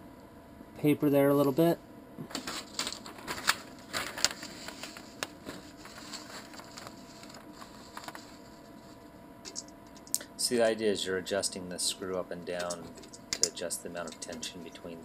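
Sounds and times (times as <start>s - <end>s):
paper rustling: 2.3s - 9.0s.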